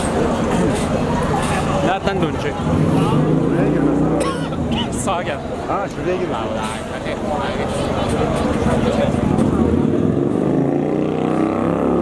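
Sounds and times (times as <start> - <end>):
people talking: 0.0 - 10.4
bus diesel engine running: 0.0 - 10.6.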